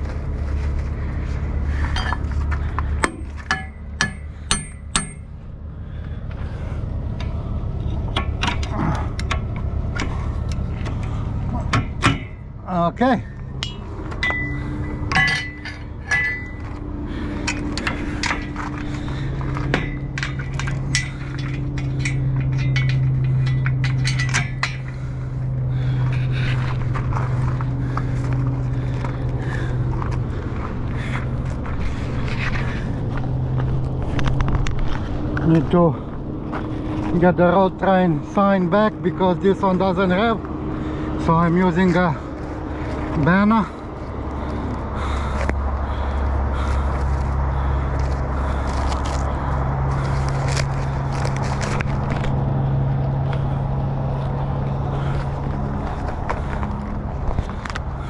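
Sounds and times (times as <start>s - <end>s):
truck engine idling: 0.0s - 58.0s
metal clinks and knocks: 1.8s - 5.4s, 13.6s - 29.2s.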